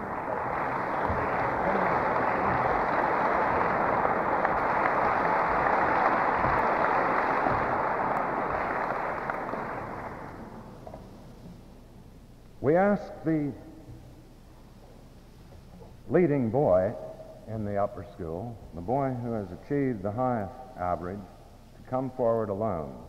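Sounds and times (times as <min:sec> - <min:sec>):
audience applauding: 0:00.0 - 0:10.8.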